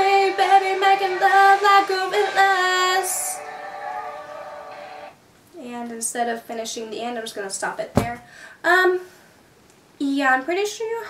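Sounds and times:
woman speaking: 5.6 - 9.0, 10.0 - 11.0.

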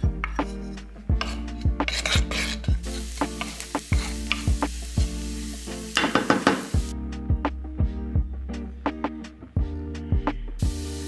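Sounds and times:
background music with beat: 0.0 - 11.0
wooden spoon stirring: 0.3 - 4.6
garlic sizzling in oil: 1.2 - 6.9, 10.6 - 11.0.

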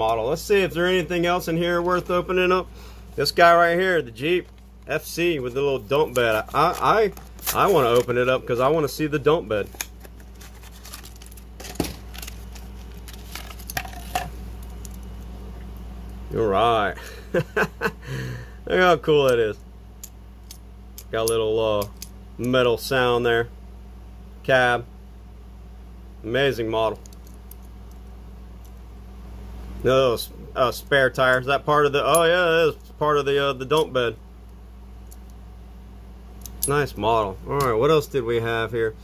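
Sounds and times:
man speaking: 0.0 - 9.8, 16.3 - 17.0, 18.7 - 19.6, 36.7 - 39.0
low room hum: 0.0 - 39.0
plastic blister pack tearing: 6.1 - 8.1, 9.6 - 14.2.

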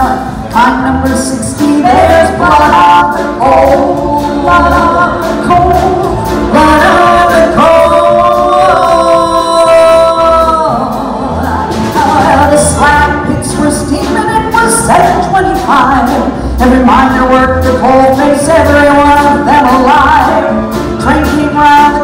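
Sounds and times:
drums: 0.0 - 22.0
piano: 0.0 - 22.0
upright bass: 0.0 - 22.0
women singing: 0.0 - 22.0.

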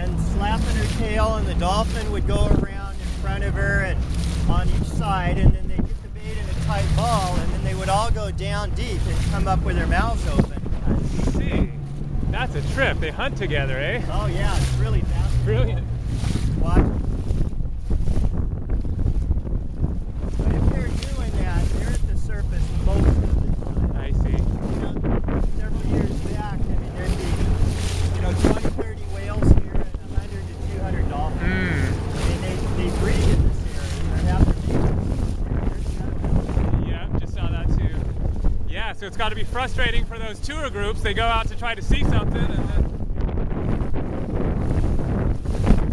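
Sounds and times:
wind buffeting microphone: 0.0 - 45.9.

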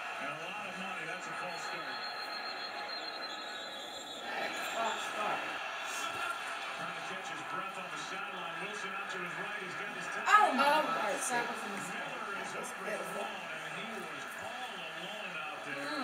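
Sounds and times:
party chatter: 0.0 - 16.0
television football commentary: 0.0 - 16.0.

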